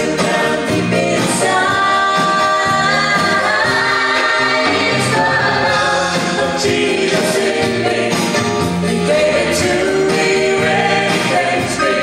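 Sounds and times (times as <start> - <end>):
live band playing: 0.0 - 12.0
people singing: 0.0 - 12.0.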